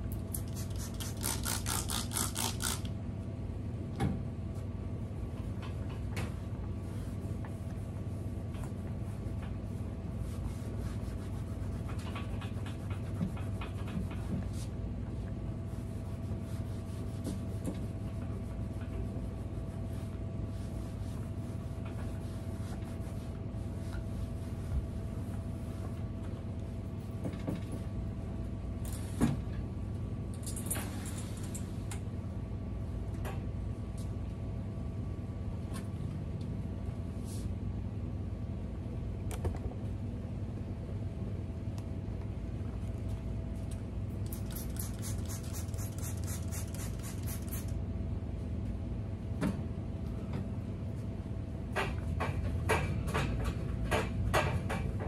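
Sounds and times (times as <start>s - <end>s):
steady low hum: 0.0s - 55.0s
spray bottle hissing: 44.3s - 47.7s.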